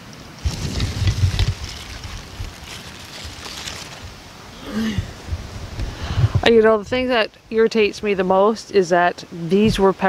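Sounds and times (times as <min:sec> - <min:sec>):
leaves rustling: 0:00.0 - 0:08.1
wind gusting on microphone: 0:00.4 - 0:08.3.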